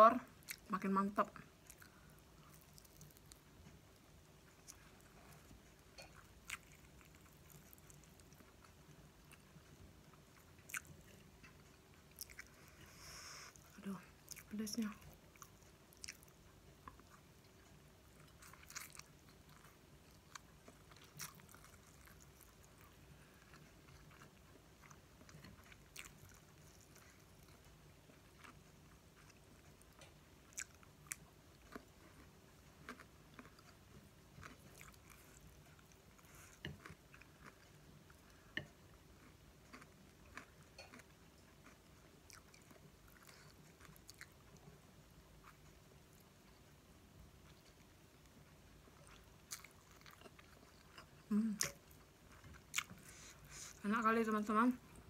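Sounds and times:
person chewing noodles: 1.5s - 46.8s, 47.4s - 53.8s.

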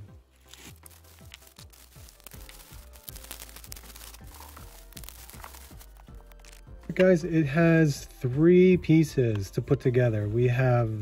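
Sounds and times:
quiet background music: 0.0s - 11.0s
bubble wrap crinkling: 0.3s - 6.8s.

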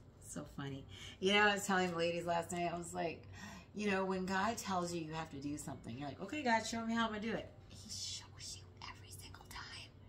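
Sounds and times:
woman whispering: 7.7s - 10.0s.

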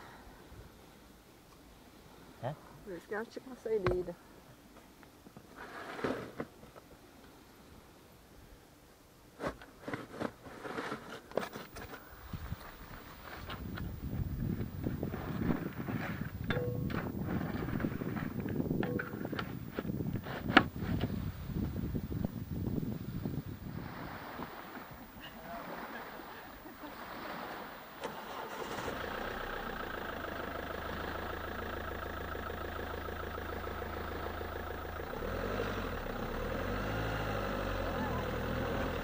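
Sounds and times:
wind buffeting microphone: 12.2s - 25.8s.

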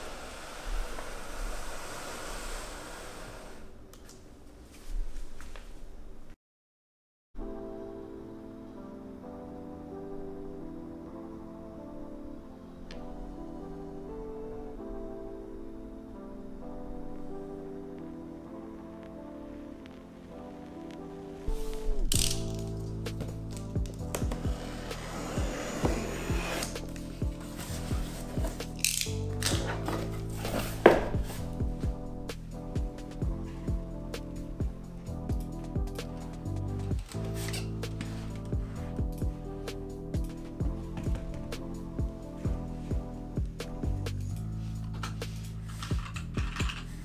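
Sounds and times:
background music: 7.4s - 47.0s.

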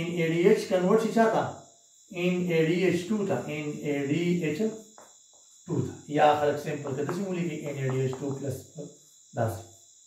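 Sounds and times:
man speaking: 0.0s - 1.5s, 2.1s - 4.8s, 5.7s - 8.8s, 9.4s - 9.6s
faint high-pitched whine: 0.0s - 10.0s.

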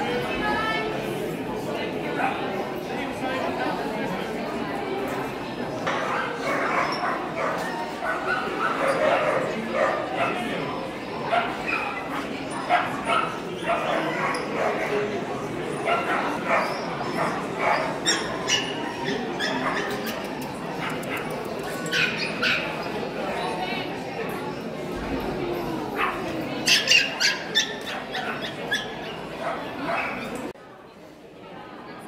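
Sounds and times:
crowd chatter in large hall: 0.0s - 32.0s.

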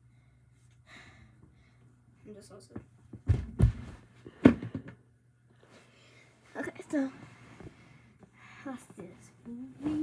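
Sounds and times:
child's footsteps thudding on floor: 2.8s - 4.8s.

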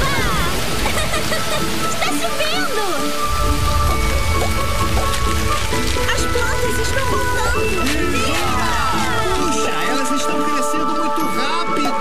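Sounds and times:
cartoon rain pattering: 0.0s - 12.0s
light background music: 0.1s - 12.0s.

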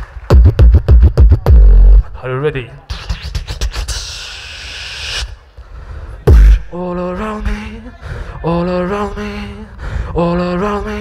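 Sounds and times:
beatboxer breathy hiss: 2.9s - 5.4s.

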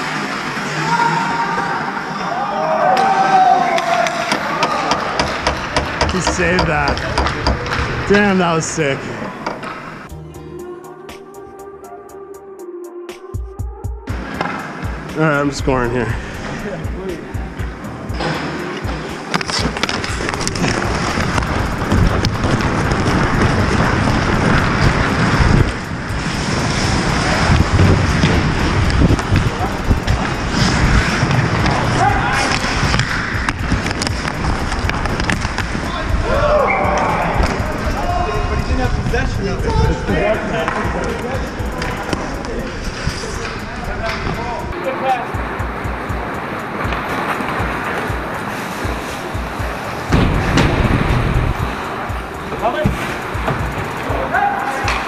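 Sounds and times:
skates scraping ice: 0.0s - 10.1s, 17.9s - 45.2s, 46.6s - 55.0s
players shouting: 0.6s - 9.4s, 26.5s - 50.5s, 51.5s - 55.0s
sticks and puck clacking: 2.9s - 8.2s, 9.4s - 10.0s, 14.2s - 15.0s, 16.4s - 38.9s, 39.6s - 55.0s
music: 10.0s - 55.0s.

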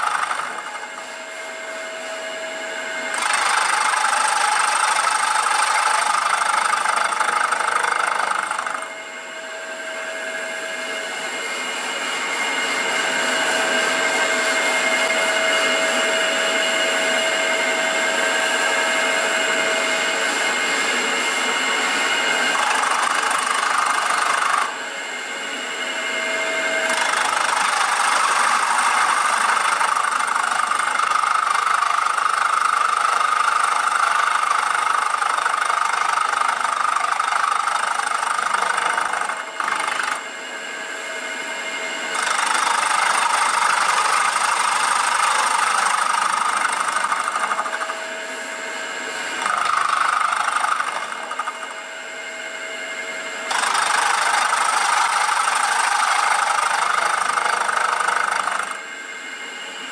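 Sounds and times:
milling spindle whine and cutting: 0.0s - 59.9s.

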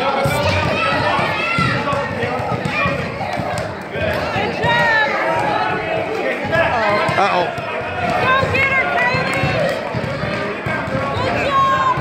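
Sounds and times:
people talking and calling out: 0.0s - 12.0s
basketball dribbling on floor: 0.3s - 5.7s, 6.5s - 12.0s.

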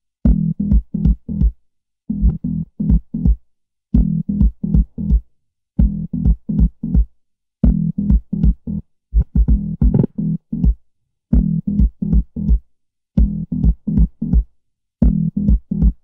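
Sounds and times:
synth bass line: 9.5s - 10.4s.

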